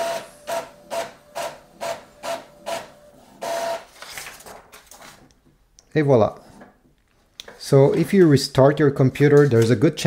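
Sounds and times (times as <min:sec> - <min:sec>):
inkjet printer printing: 0:00.0 - 0:04.0.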